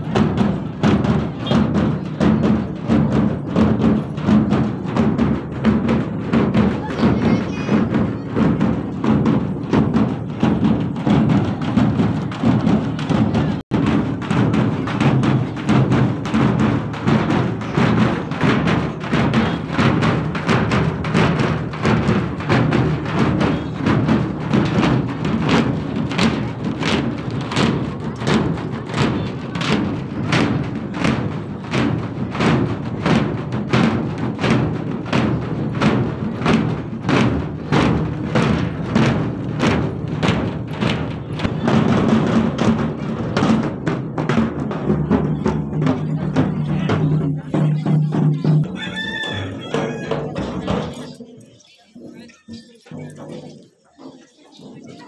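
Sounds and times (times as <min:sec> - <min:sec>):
drum-led music: 0:00.0 - 0:55.0.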